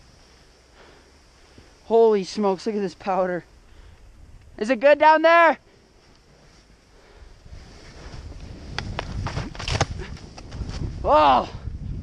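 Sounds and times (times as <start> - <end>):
skis sliding through snow: 4.6 - 11.0
wind on microphone: 7.0 - 12.0
sharp ski scrapes: 7.5 - 9.8.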